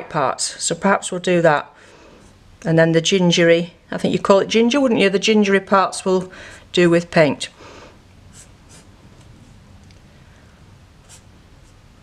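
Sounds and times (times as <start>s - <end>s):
felt-tip pen scratching on paper: 8.3s - 9.3s, 11.0s - 11.8s.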